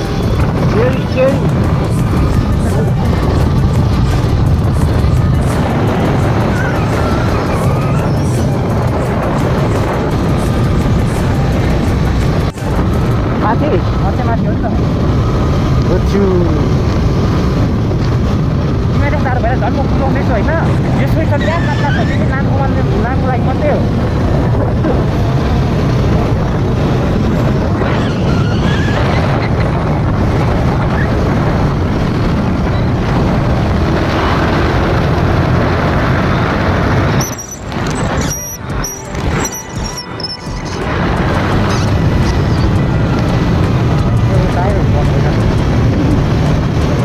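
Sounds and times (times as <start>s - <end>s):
motorcycle engine running: 0.0s - 47.0s
wind on microphone: 0.0s - 47.0s.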